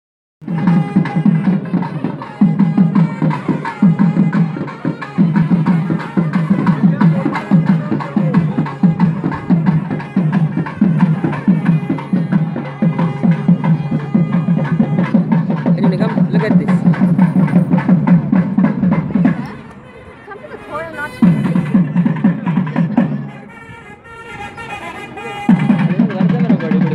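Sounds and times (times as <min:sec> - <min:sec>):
fast steady drumming: 0:00.4 - 0:19.7, 0:20.7 - 0:23.5, 0:25.0 - 0:26.9
sustained melody: 0:00.4 - 0:26.9.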